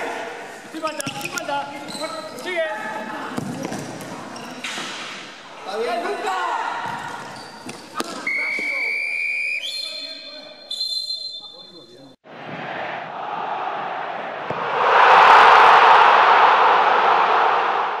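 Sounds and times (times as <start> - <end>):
referee's whistle blasts: 8.1 - 11.9.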